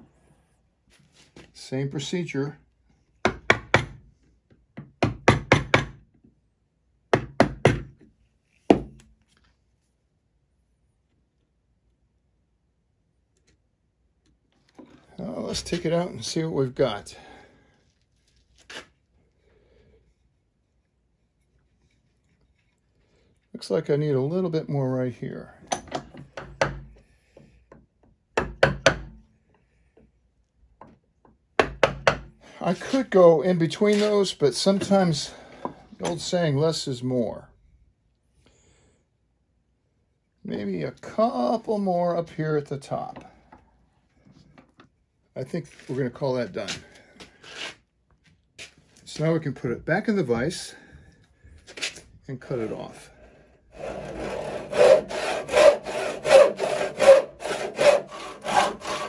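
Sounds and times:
mallet tapping chisel into wood: 0:28.4 - 0:29.2, 0:31.6 - 0:32.3.

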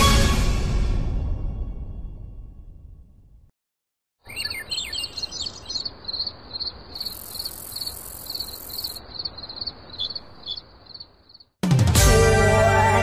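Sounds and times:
gliding bird calls: 0:04.2 - 0:11.0
steady high insect buzz: 0:04.8 - 0:11.6.

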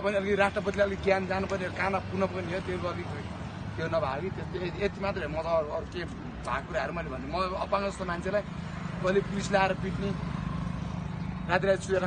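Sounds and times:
man's voice: 0:00.0 - 0:10.2
street traffic hum: 0:00.0 - 0:12.0.

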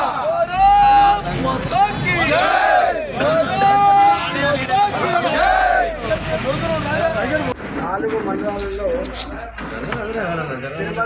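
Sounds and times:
crowd of men shouting: 0:00.0 - 0:07.4.

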